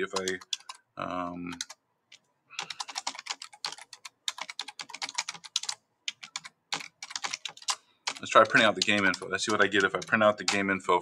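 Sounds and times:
typing on computer keyboard: 0:00.0 - 0:00.8, 0:01.5 - 0:10.7.

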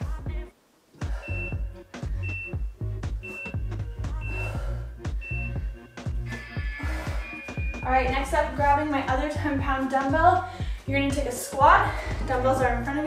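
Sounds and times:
music with steady bass beat: 0:00.0 - 0:13.0
short high timer beeps: 0:03.2 - 0:04.5, 0:06.6 - 0:08.0.

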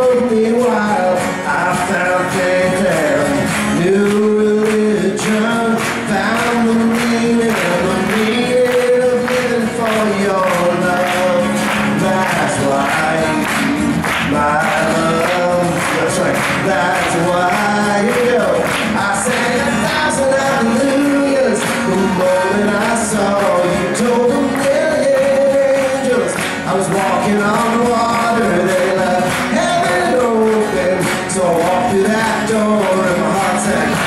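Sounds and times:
acoustic guitars strumming: 0:00.0 - 0:34.0
person singing: 0:00.0 - 0:34.0.

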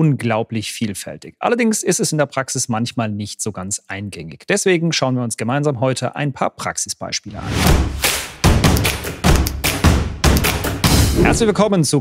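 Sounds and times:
deep percussive thumps: 0:07.6 - 0:11.6.

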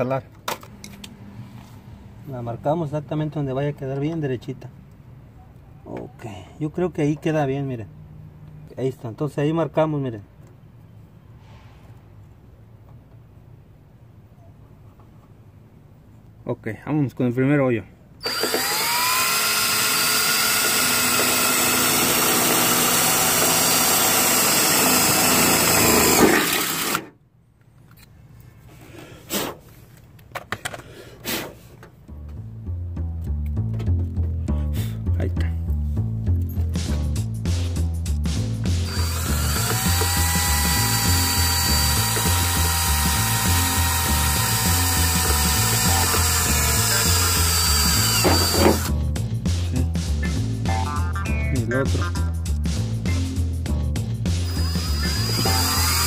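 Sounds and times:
cordless drill drilling sheet metal: 0:18.2 - 0:27.1, 0:38.8 - 0:48.9, 0:54.3 - 0:56.0
music with steady bass beat: 0:32.0 - 0:41.0, 0:48.9 - 0:55.7.

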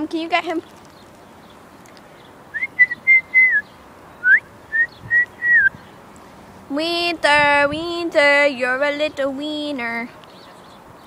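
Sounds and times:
person whistling to call dog: 0:02.6 - 0:03.6, 0:04.2 - 0:05.8.

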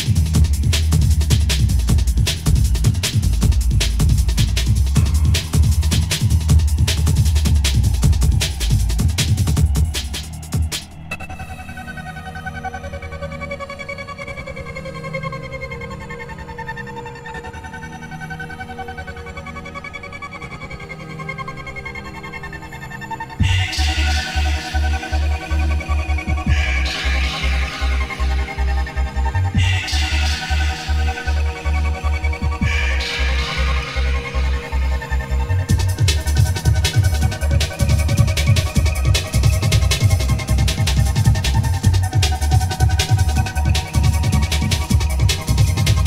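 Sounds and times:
fast breakbeat drums: 0:00.0 - 0:11.0, 0:23.4 - 0:28.4, 0:29.5 - 0:31.5, 0:32.3 - 0:34.6, 0:35.6 - 0:46.0
pulsing sub-bass: 0:00.0 - 0:18.2, 0:20.4 - 0:46.0
electronic jungle music: 0:00.0 - 0:46.0.

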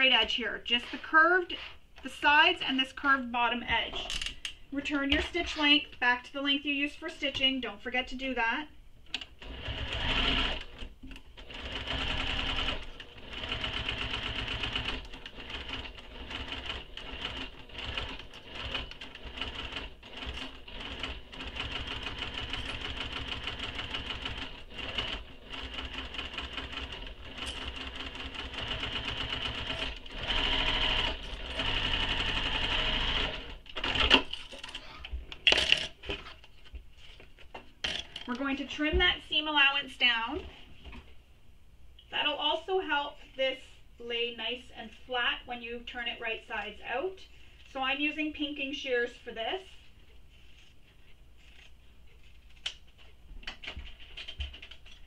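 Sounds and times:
sewing machine stitching: 0:09.4 - 0:34.2.

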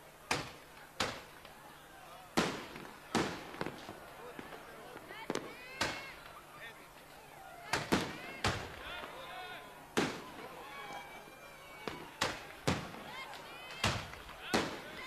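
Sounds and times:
fireworks bangs echoing: 0:00.0 - 0:01.6, 0:02.3 - 0:06.4, 0:07.7 - 0:09.2, 0:09.9 - 0:10.6, 0:11.7 - 0:15.0.

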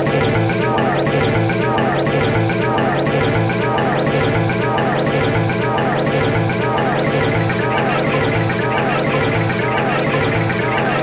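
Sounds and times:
looping cartoon music and voices: 0:00.0 - 0:11.0.

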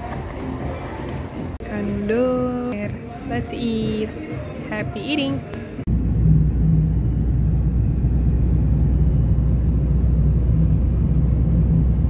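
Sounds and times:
car interior road and engine noise: 0:05.0 - 0:12.0.

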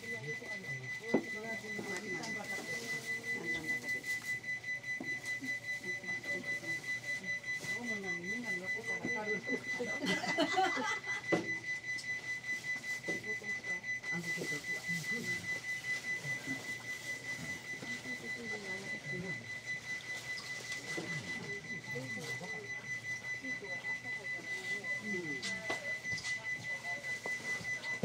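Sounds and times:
faint voices talking: 0:00.0 - 0:28.0.

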